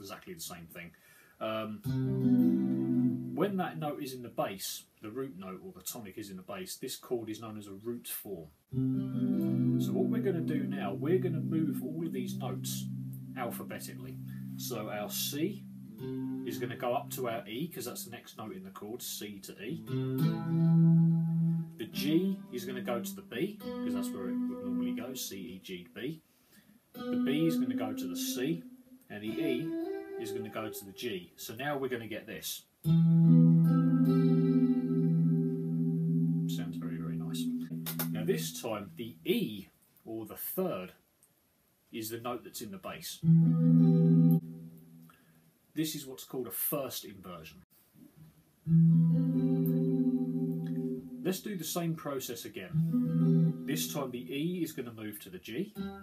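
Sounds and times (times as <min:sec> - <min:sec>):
electric guitar note: 0:01.9 - 0:03.4, 0:08.8 - 0:17.3, 0:19.8 - 0:25.3, 0:27.0 - 0:31.0, 0:32.9 - 0:38.6, 0:43.2 - 0:45.0, 0:48.7 - 0:51.3, 0:52.8 - 0:54.3.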